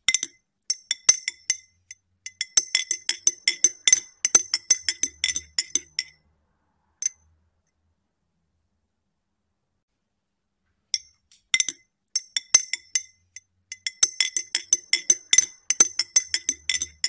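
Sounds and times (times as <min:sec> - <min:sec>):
spoon clinking in glass: 0:02.3 - 0:06.1, 0:11.0 - 0:17.0.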